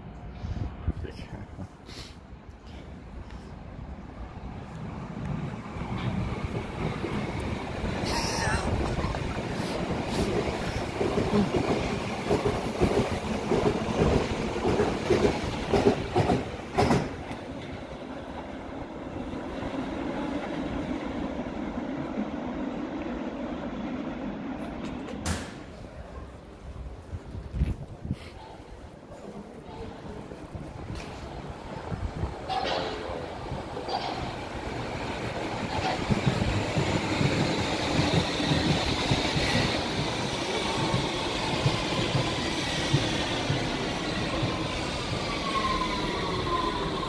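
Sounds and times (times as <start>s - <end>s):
train wheels clattering over rail joints: 8.7s - 17.7s, 32.4s - 44.6s.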